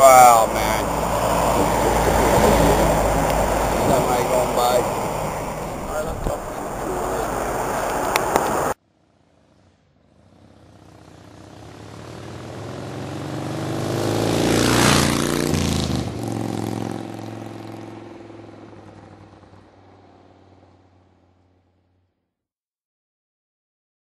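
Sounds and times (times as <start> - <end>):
road vehicle driving past: 0.0 - 22.1.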